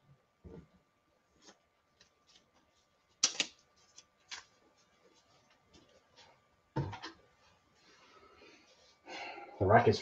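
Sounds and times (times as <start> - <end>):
comic book pages rustling: 1.3 - 6.4
crisp snap: 3.2 - 4.4.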